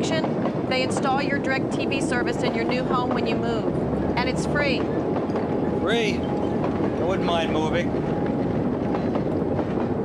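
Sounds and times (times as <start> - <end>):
train wheels on track: 0.0 - 10.0.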